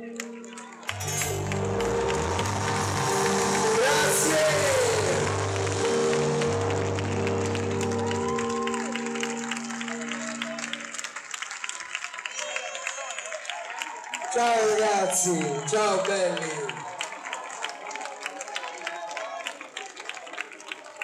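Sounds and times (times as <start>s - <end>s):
crowd cheering and applauding: 0.0s - 21.0s
shouts and whoops: 12.1s - 19.6s.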